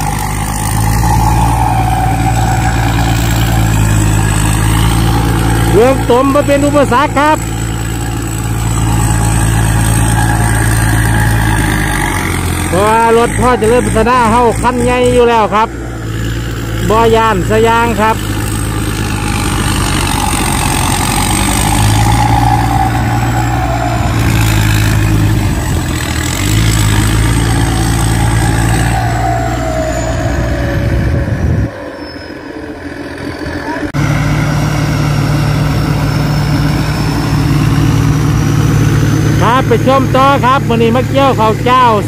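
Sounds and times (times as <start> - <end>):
harvester engine hum: 0.0 - 42.0.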